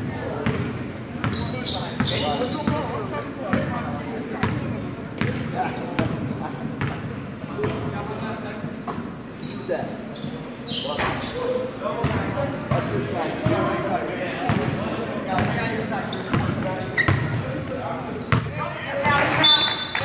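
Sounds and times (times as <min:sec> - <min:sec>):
sneaker squeaks: 0:00.0 - 0:04.6, 0:07.6 - 0:12.9, 0:15.4 - 0:20.0
voices of players and spectators: 0:00.0 - 0:20.0.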